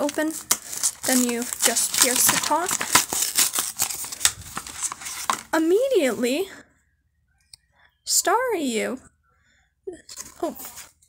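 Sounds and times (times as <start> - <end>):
wrapper crinkling and tearing: 0.0 - 5.6.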